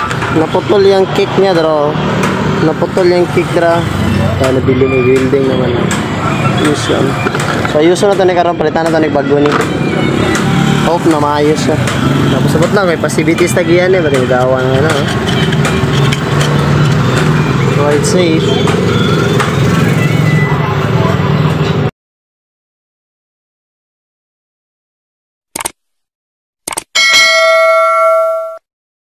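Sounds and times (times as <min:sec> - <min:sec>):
bell chime ding: 0:27.0 - 0:28.6.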